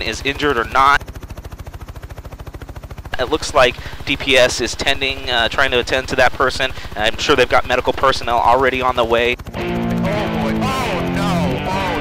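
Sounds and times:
helicopter rotor blades chopping: 0.0s - 12.0s.

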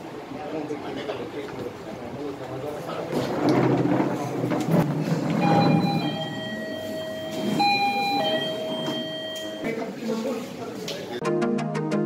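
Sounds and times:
background noise: 0.0s - 11.3s
electronic two-tone siren: 5.4s - 9.7s.

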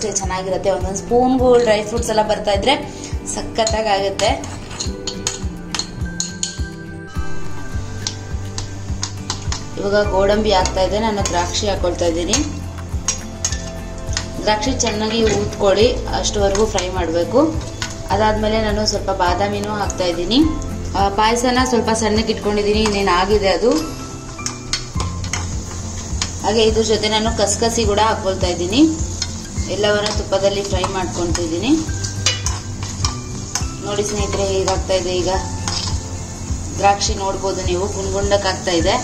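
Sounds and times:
background music: 0.0s - 39.0s
light sizzling in a pan: 0.0s - 39.0s
spoon clinking on pan: 3.6s - 6.7s, 29.2s - 34.9s.

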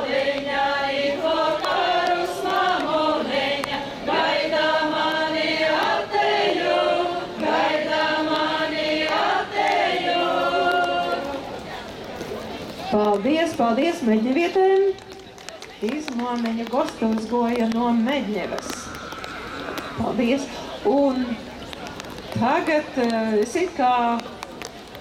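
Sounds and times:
women singing folk song together: 0.0s - 11.6s.

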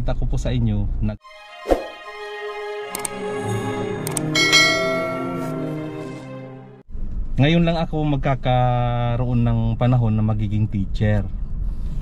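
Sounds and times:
sharp clicks: 2.9s - 3.2s, 4.1s - 4.3s
bell-like chimes jingle: 3.4s - 6.4s.

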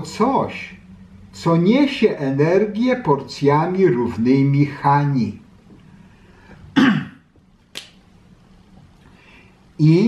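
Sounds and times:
man clearing his throat: 6.7s - 7.3s
sharp click: 7.7s - 8.0s.

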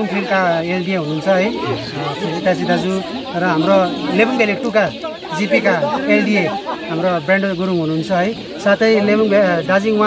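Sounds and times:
chicks peeping: 0.0s - 10.0s
people talking: 0.0s - 10.0s.

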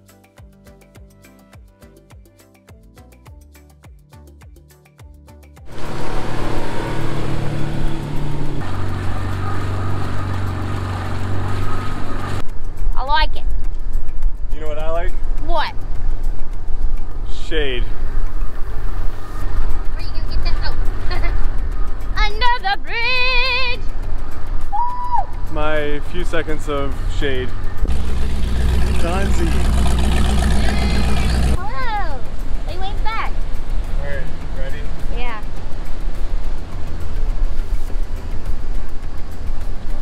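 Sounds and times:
boat motor humming: 5.7s - 13.0s, 26.1s - 40.0s
people whooping: 24.7s - 25.3s.

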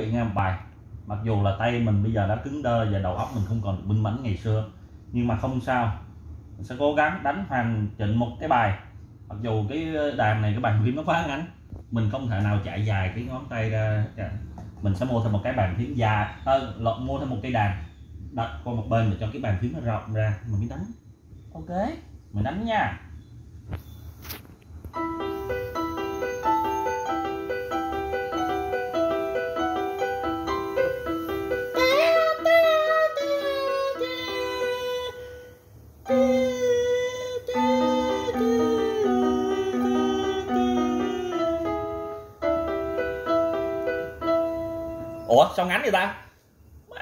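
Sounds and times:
mini keyboard melody: 24.9s - 45.3s.

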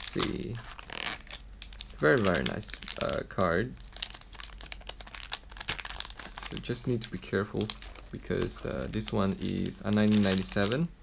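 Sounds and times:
plastic wrapper crinkling: 0.0s - 10.9s.

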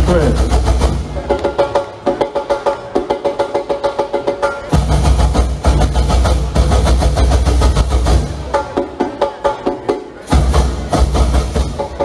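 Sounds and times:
street percussion fast rhythm: 0.0s - 12.0s.

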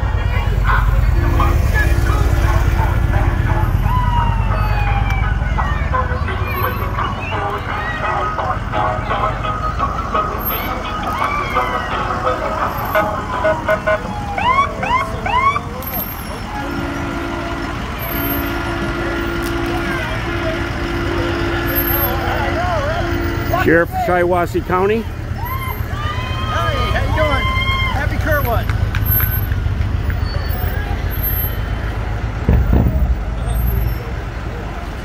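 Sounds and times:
emergency vehicles idling: 0.0s - 35.0s
voices: 0.0s - 35.0s
rising siren chirps: 3.6s - 8.6s.

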